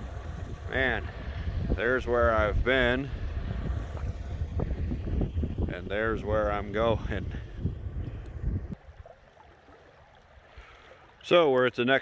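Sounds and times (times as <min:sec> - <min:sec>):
wind gusting on microphone: 0:00.0 - 0:09.0.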